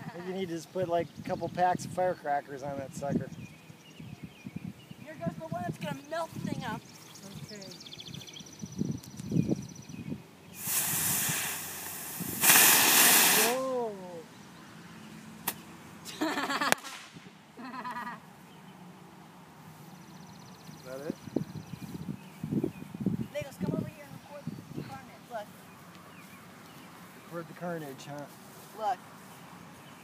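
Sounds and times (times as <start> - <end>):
sharp pop: 10.6 - 13.6, 15.4 - 15.6, 16.7 - 17.2
crackling burst: 10.6 - 13.7
firework hissing: 10.6 - 13.7.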